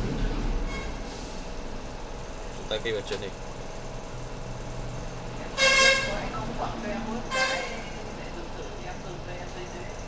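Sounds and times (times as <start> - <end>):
vehicle horn honk: 0.7 - 1.0, 5.6 - 6.2, 7.3 - 8.0.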